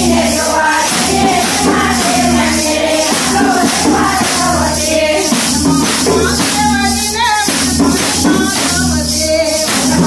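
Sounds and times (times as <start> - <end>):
women singing devotional song: 0.0 - 10.0.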